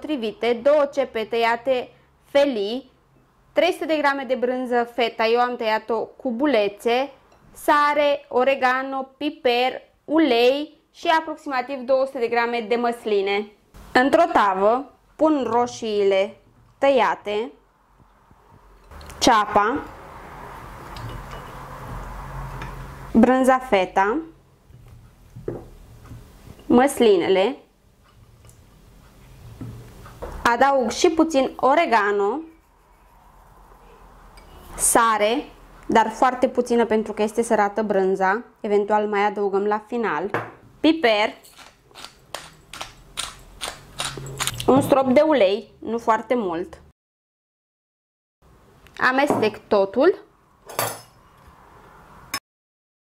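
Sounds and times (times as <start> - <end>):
pepper mill grinding: 41.4 - 44.7.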